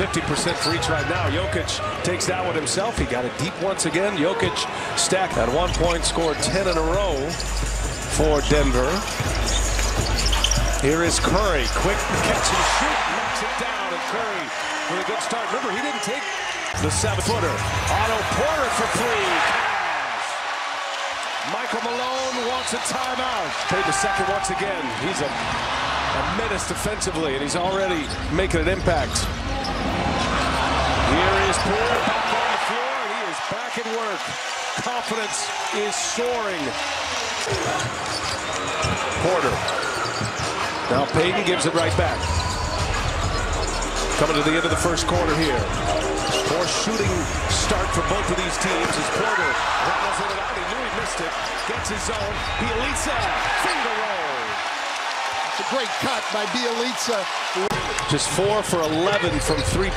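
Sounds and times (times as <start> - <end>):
arena crowd noise: 0.0 - 59.9.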